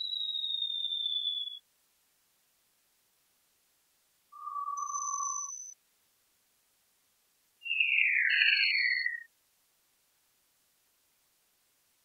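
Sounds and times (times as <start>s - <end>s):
faint high whistle: 0.0s - 1.6s, 4.3s - 5.8s.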